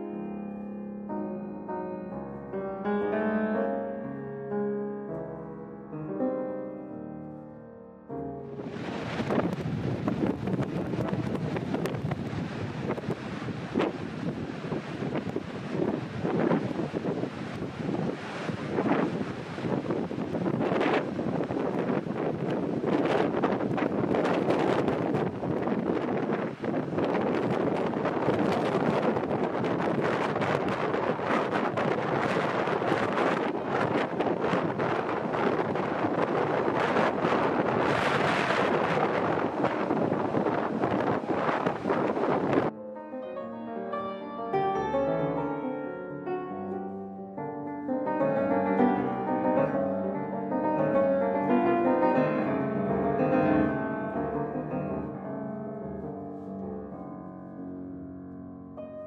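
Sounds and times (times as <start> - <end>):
waterfall roaring: 8.6 - 42.7
wind buffeting microphone: 8.6 - 42.7.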